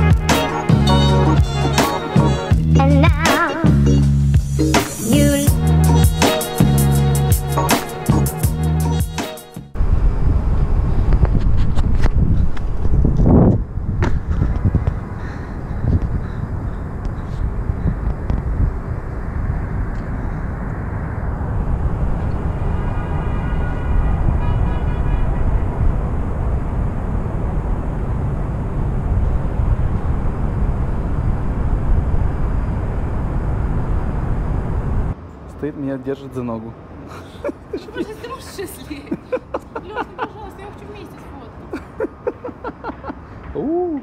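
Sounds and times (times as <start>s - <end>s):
wind rumble on microphone: 9.7s - 35.2s
distant city traffic: 13.6s - 44.0s.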